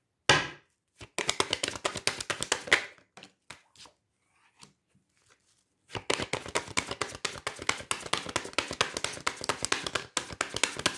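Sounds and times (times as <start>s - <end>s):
cards being shuffled: 1.0s - 3.9s, 4.6s - 10.9s.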